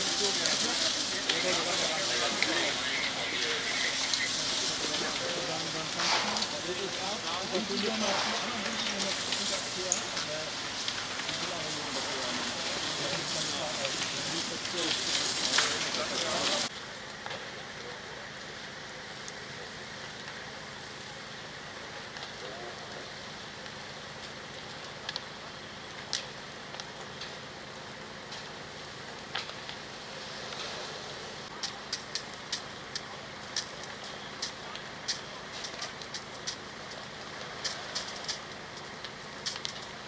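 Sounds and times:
building fire rushing: 0.0 - 40.0
fire crackling and popping: 0.0 - 40.0.

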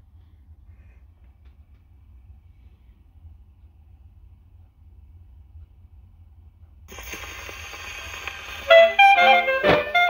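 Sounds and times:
record surface hiss and crackle: 3.4 - 10.0.

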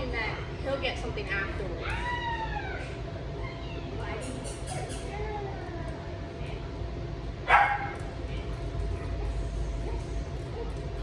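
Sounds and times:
dog barking: 7.5 - 8.0.

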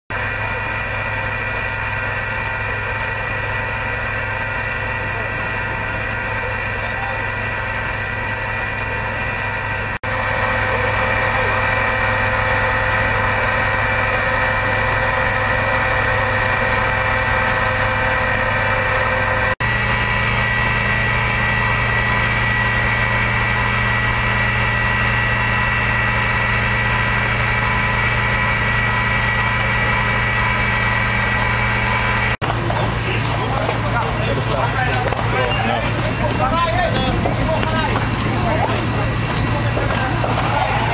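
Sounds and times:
diesel engine driving pump: 0.1 - 40.9.

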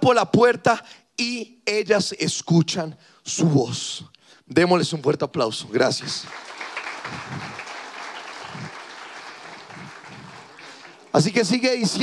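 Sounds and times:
audience applauding: 6.0 - 12.0.

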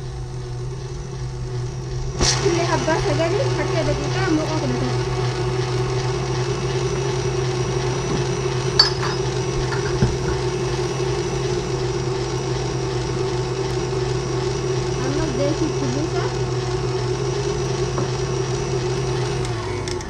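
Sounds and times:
stand mixer whisking batter: 0.0 - 20.0.

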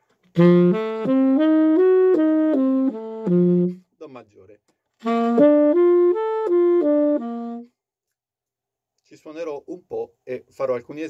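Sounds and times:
tenor saxophone playing: 0.2 - 3.9, 5.0 - 7.8.

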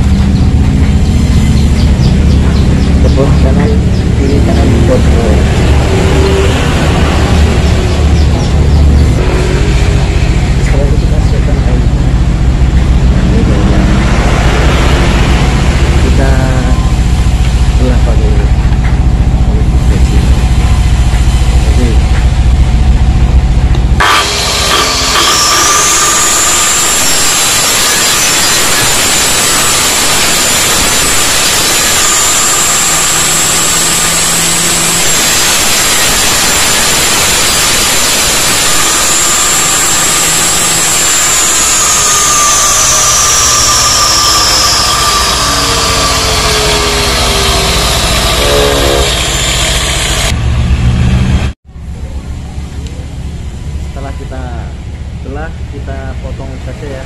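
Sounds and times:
table saw cutting wood: 0.0 - 22.1, 23.6 - 50.4
table saw humming: 0.0 - 51.6.

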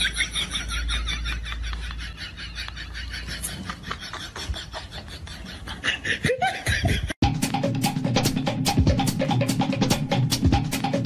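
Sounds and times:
person laughing: 0.0 - 7.2.

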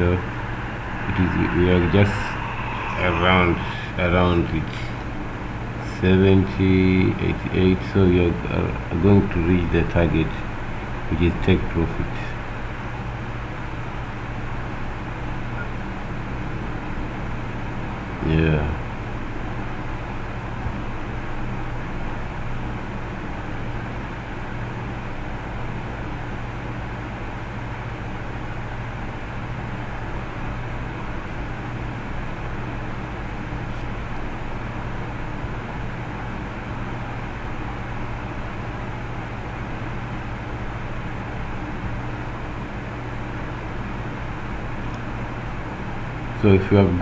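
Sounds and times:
background hiss: 0.0 - 5.1
low hum: 0.0 - 7.6.

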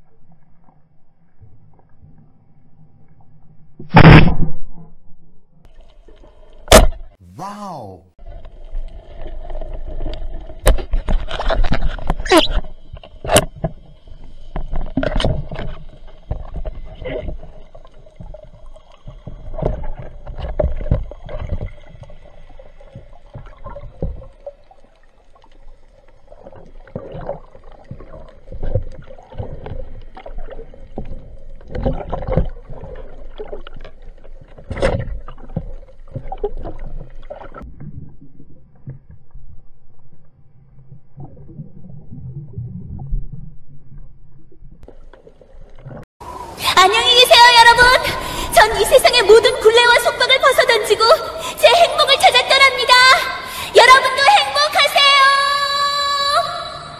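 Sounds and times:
low rumble of moving water: 0.0 - 7.2, 8.2 - 54.2
low underwater hum: 0.0 - 51.7, 55.3 - 56.9
sharp crack: 3.9 - 4.7
short sliding squeal: 12.2 - 12.7.

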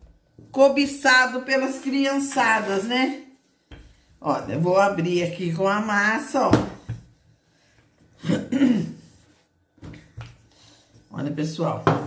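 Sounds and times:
person clearing throat: 8.2 - 9.0.

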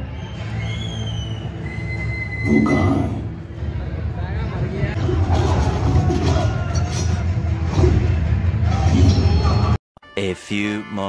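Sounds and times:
action film soundtrack: 0.2 - 9.8.

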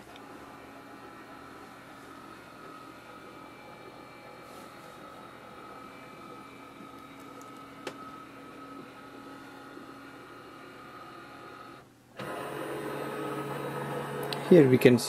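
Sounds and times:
scanner motor whine: 0.0 - 15.0.

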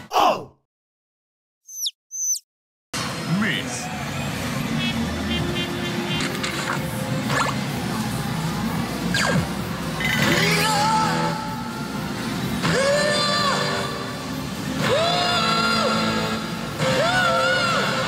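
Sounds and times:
recorded voice clips: 3.3 - 3.9.

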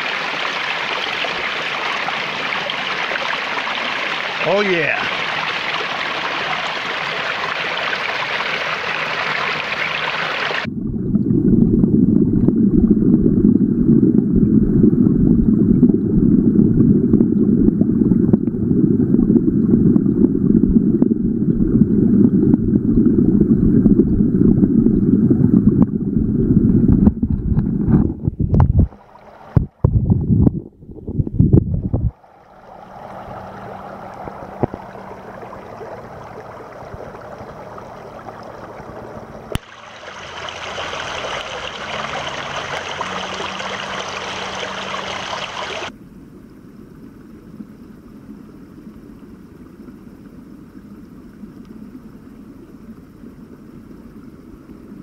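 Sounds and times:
stream rushing water: 0.0 - 10.7, 28.9 - 29.8, 32.1 - 45.9
water splashes: 0.0 - 11.3, 28.7 - 30.2, 31.8 - 45.9
muffled underwater rumble: 10.5 - 55.0.

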